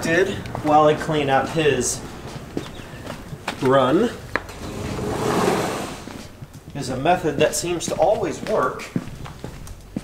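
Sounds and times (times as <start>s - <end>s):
rustling scraping noise: 4.4s - 6.4s.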